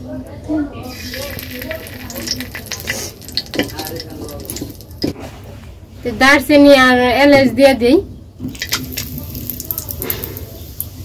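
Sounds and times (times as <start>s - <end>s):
spices sizzling in hot oil: 0.8s - 5.2s, 8.5s - 11.0s
sharp crackles and pops: 0.9s - 5.2s, 8.4s - 11.0s.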